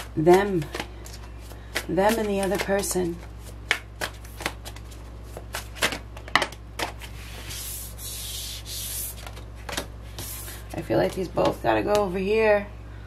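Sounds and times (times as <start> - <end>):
cards snapping and tapping: 0.0 - 3.0, 3.6 - 7.0, 9.2 - 10.3
cards sliding across wooden table: 6.8 - 10.7.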